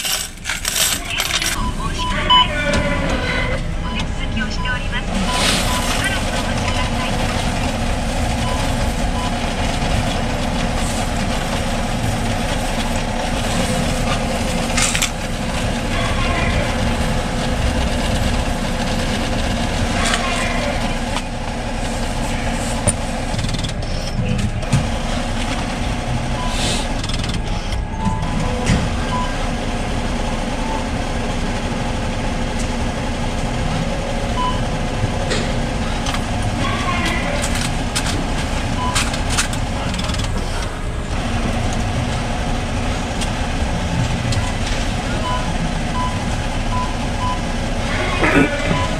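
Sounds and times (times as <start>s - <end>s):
coin-counting machine whirring: 0.0s - 2.6s, 5.2s - 24.2s.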